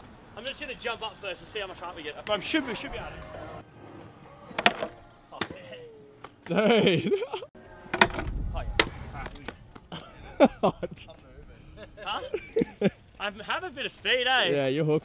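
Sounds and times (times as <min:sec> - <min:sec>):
wheels rolling rumble: 0:00.0 - 0:05.2.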